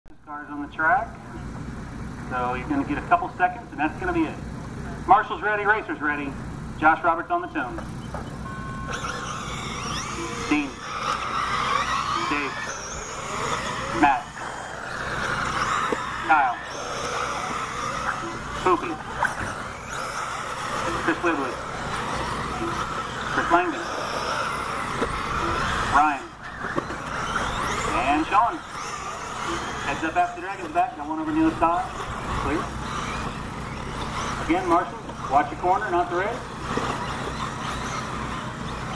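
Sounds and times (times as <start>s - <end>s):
electric motors whining: 7.5s - 38.9s
electronic start tone beeping: 7.9s - 9.0s.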